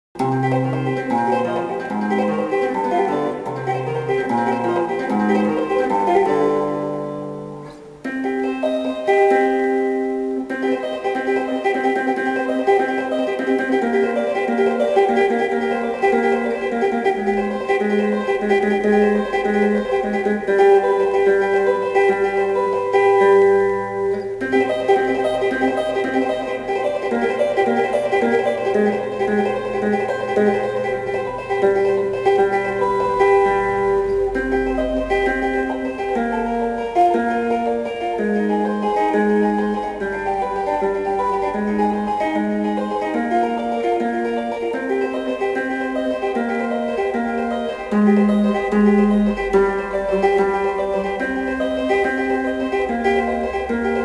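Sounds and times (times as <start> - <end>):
tapped guitar playing classical piece: 0.2 - 54.0.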